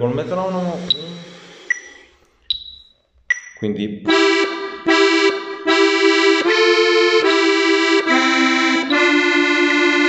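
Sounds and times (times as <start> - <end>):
metronome beeping: 0.9 - 4.3, 7.8 - 10.0.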